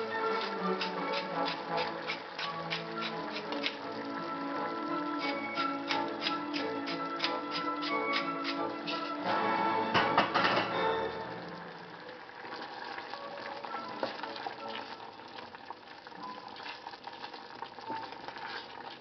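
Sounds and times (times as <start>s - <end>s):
background music: 0.0s - 15.3s
sauce simmering with soft sizzle: 0.0s - 19.0s
wooden spoon tapping and scraping: 0.3s - 3.8s, 5.6s - 9.2s.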